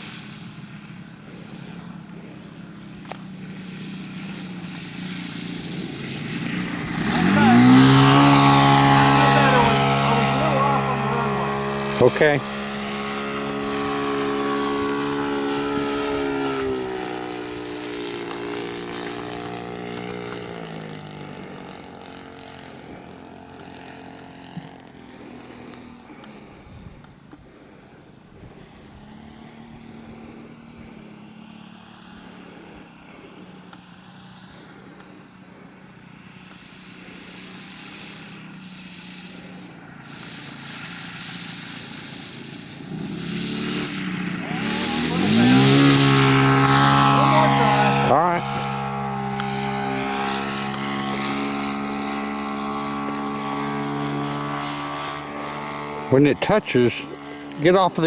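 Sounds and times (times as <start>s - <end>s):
model airplane engine in flight: 0.0s - 58.0s.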